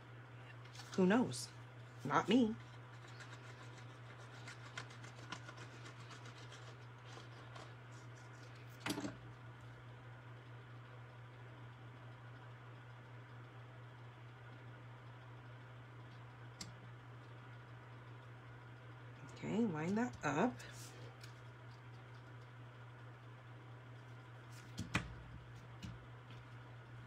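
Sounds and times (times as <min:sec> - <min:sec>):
steady low hum: 0:00.0 - 0:27.0
paper rustling and clicks: 0:03.0 - 0:07.8.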